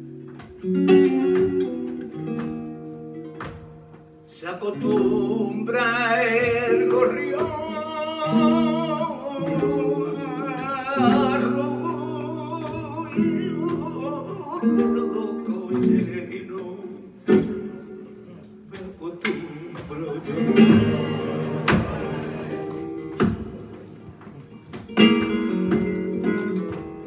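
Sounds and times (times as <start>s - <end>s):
flamenco guitar: 0.0s - 27.0s
man singing with vibrato: 4.3s - 17.8s.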